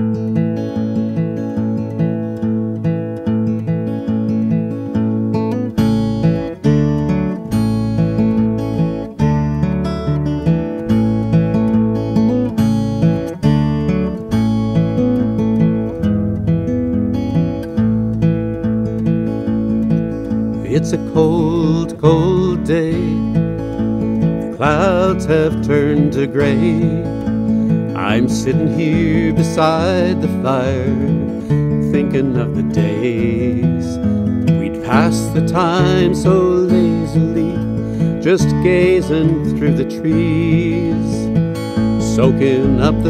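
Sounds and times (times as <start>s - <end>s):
acoustic guitar strumming: 0.0s - 43.0s.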